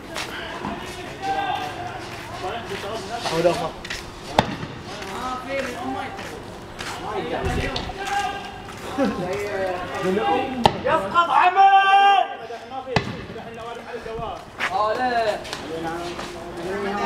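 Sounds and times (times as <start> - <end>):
sharp bangs: 4.3 - 5.2, 12.9 - 13.7
men shouting: 9.8 - 12.5.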